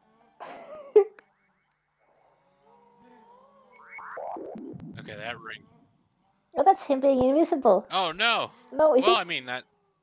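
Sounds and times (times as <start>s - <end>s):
wavering synthesizer tones: 1.2s - 6.0s.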